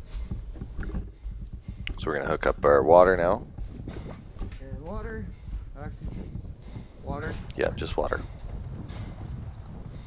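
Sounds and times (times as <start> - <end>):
low steady rumble: 0.0 - 10.0.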